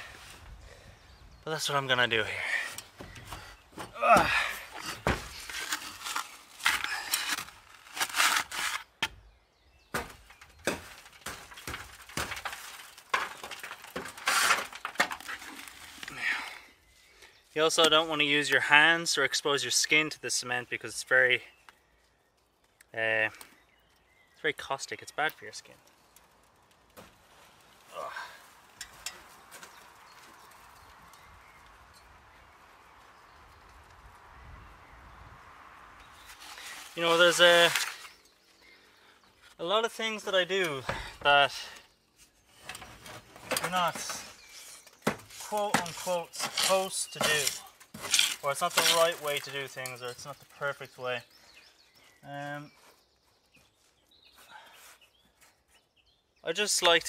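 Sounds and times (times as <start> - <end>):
low outdoor background noise: 0.0 - 57.0
trowel scraping wet cement: 4.8 - 8.9, 44.0 - 49.6.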